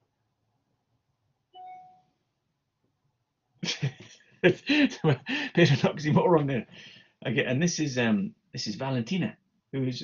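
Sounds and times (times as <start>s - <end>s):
man laughing: 3.6s - 6.4s.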